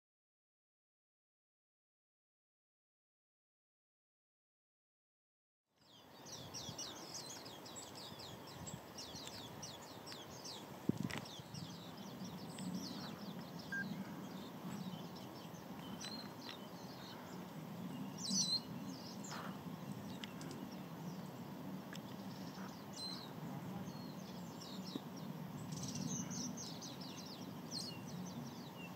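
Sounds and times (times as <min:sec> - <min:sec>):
low background noise: 0:05.8 - 0:28.9
wild birds chirping: 0:05.8 - 0:28.9.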